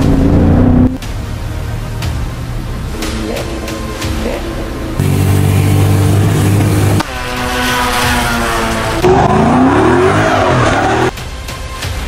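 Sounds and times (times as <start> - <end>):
car engine drone inside car: 1.9 - 7.1
engine revving: 3.0 - 11.1
race cars passing: 3.0 - 11.1.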